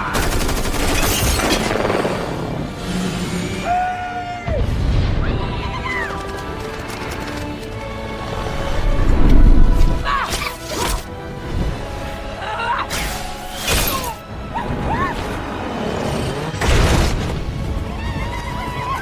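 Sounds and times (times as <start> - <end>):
rapid gunfire: 0.0 - 2.3
orchestral score: 1.6 - 19.0.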